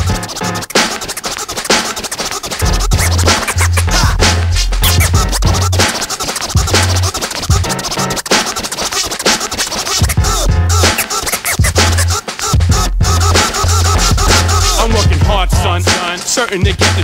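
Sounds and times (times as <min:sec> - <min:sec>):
hip hop beat with heavy bass: 0:00.0 - 0:17.0
turntable scratching: 0:00.0 - 0:17.0.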